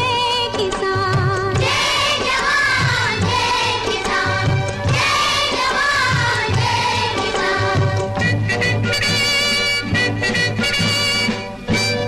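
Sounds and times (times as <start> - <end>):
instrumental accompaniment with beat: 0.0 - 12.0.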